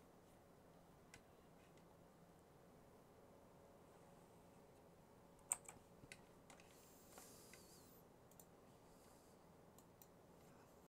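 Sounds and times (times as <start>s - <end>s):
soft hiss: 0.0s - 10.9s
mouse and keyboard clicks: 5.4s - 6.8s.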